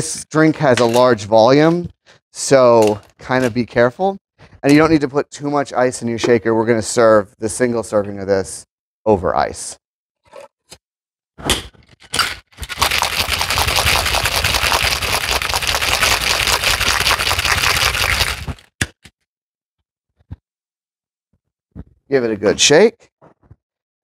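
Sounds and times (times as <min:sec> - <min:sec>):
ice rattling in cocktail shaker: 0:12.6 - 0:18.7.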